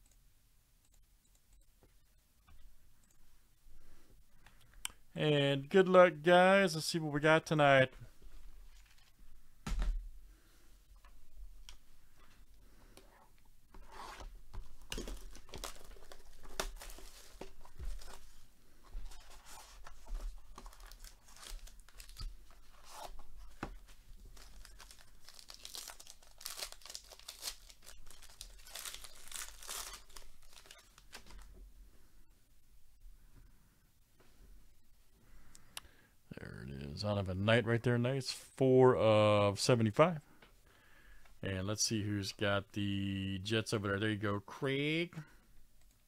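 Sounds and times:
foil wrapping ripping and crinkling: 0:24.3 - 0:31.2.

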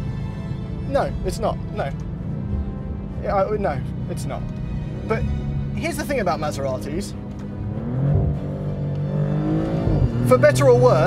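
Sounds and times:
background music: 0:00.0 - 0:11.0
car engine accelerating: 0:01.8 - 0:11.0.

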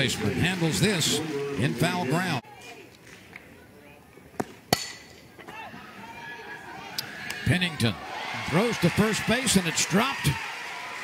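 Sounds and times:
low crowd noise: 0:00.0 - 0:11.0
bat cracking against ball: 0:04.4 - 0:05.2.

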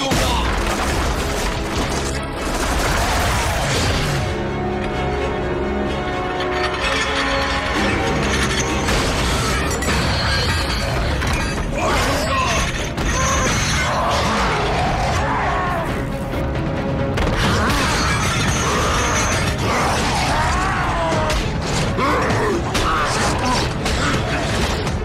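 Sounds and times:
orchestral score: 0:00.0 - 0:25.0
metal creaking and grinding: 0:05.8 - 0:14.2.

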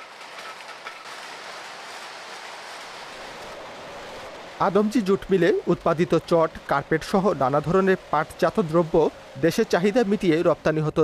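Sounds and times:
machinery clattering: 0:00.0 - 0:03.0.

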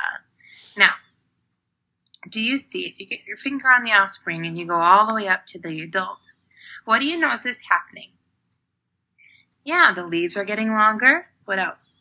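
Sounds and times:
woman speaking: 0:00.0 - 0:01.0, 0:02.2 - 0:08.0, 0:09.7 - 0:12.0.

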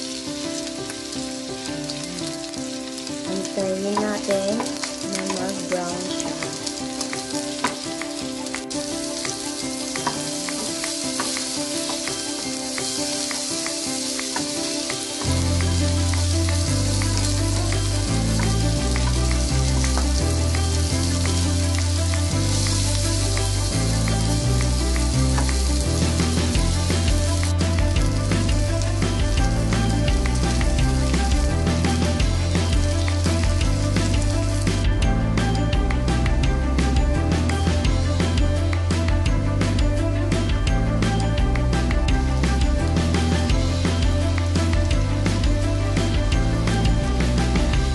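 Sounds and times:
background music: 0:00.0 - 0:47.9
beef sizzling in oil: 0:00.0 - 0:47.9
deep bass line: 0:15.2 - 0:47.9.

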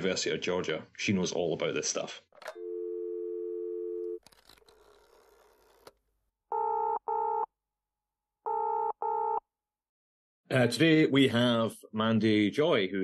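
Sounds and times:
telephone dial tone: 0:02.5 - 0:04.2
telephone ringing tone: 0:02.5 - 0:04.2, 0:06.5 - 0:07.5, 0:08.5 - 0:09.4.

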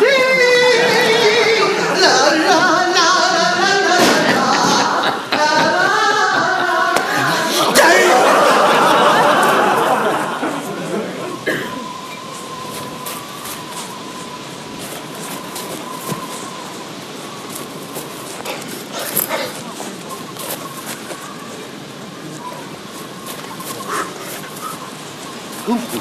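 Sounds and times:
steady outdoor hiss: 0:00.0 - 0:26.0.

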